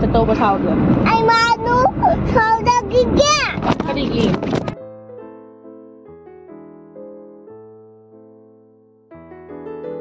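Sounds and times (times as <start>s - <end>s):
car driving rumble: 0.0s - 4.8s.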